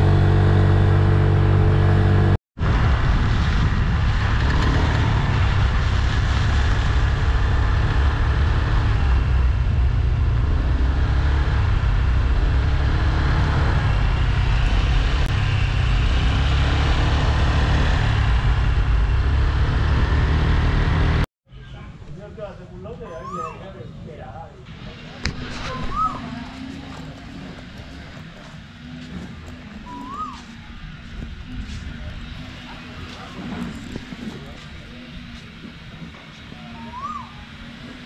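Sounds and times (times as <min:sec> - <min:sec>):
wind noise: 0:01.2 - 0:20.6, 0:25.2 - 0:36.8
scooter engine: 0:24.8 - 0:38.0.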